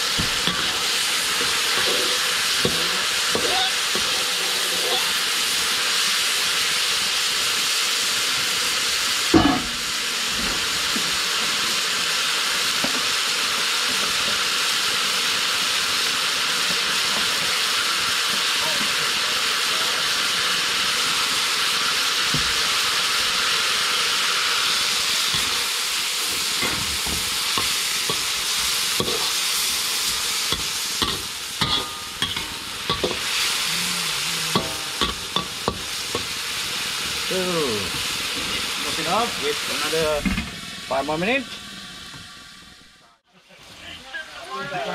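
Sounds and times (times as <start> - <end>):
meat sizzling in oil: 0.0 - 44.9
metal ladle knocking on wok: 9.4 - 9.8, 30.6 - 33.2.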